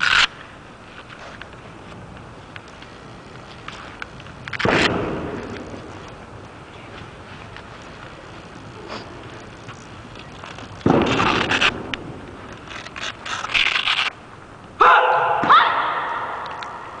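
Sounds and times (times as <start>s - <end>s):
person shouting in hall: 14.8s - 16.5s.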